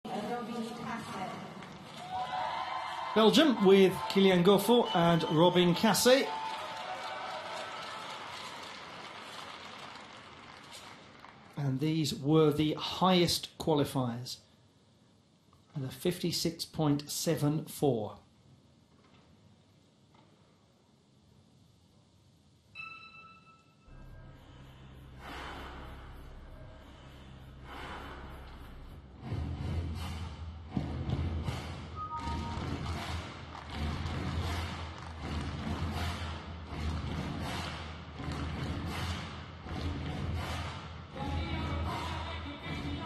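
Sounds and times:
crowd noise in sports hall: 0.0 - 11.6, 31.2 - 43.0
low bass drone: 23.9 - 40.6.

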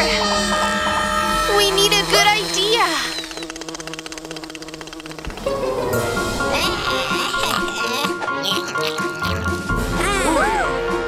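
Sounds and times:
cartoon mosquito wings buzzing: 0.0 - 9.8
background music: 0.0 - 11.0.

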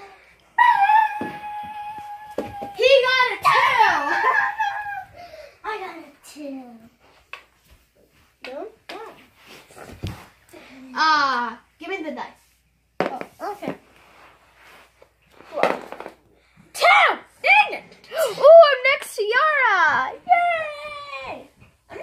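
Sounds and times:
children calling out: 0.0 - 5.2.

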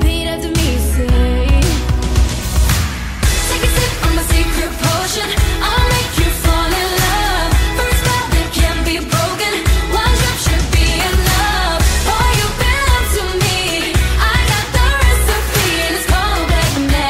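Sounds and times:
person singing: 0.0 - 2.0, 3.3 - 17.0
pop song with heavy bass: 0.0 - 17.0.

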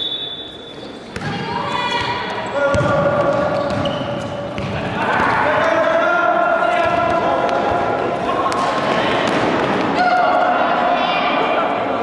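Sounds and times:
players shouting in gym: 4.8 - 11.8.

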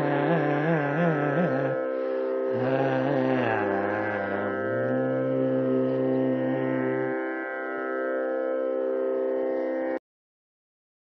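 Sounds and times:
tanpura drone: 0.0 - 10.0.

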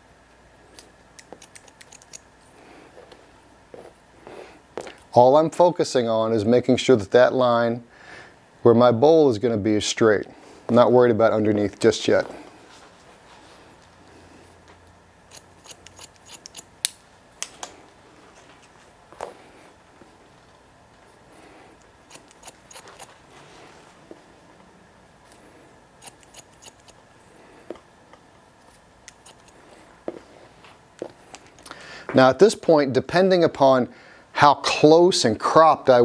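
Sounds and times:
shears snipping hair: 0.7 - 2.3, 15.3 - 17.8, 21.8 - 23.3, 26.0 - 27.0, 28.6 - 30.6.

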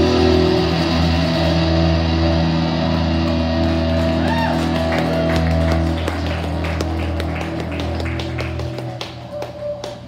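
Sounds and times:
rock band sustained chord: 0.0 - 9.5.

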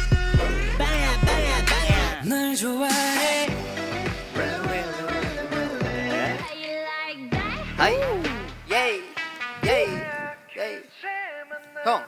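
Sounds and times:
pop stage music melody: 0.0 - 12.0.

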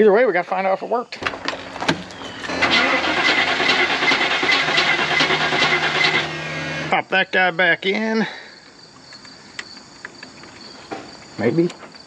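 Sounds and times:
starter motor cranking engine: 1.2 - 7.0.

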